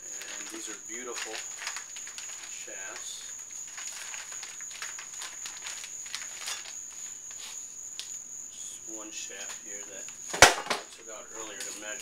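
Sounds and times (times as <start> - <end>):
plastic wrapping crinkling: 0.0 - 8.2
faint high-pitched whine: 0.0 - 12.0.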